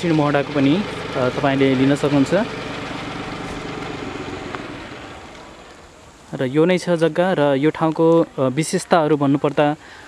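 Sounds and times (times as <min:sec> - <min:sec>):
motor vehicle engine running: 0:00.0 - 0:06.2.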